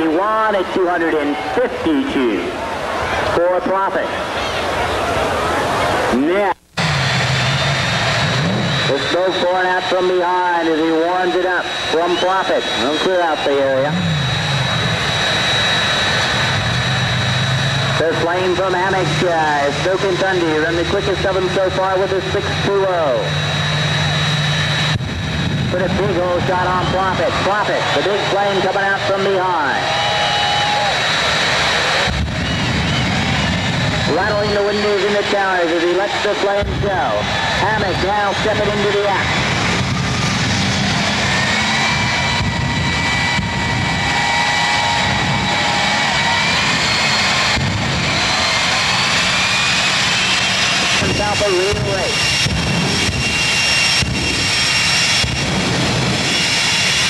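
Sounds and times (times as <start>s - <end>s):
jet engines droning with whistle: 0.0s - 57.0s.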